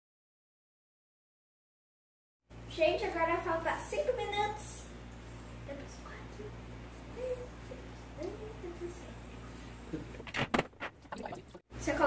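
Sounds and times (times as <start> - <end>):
steady low hum: 2.5 - 12.0.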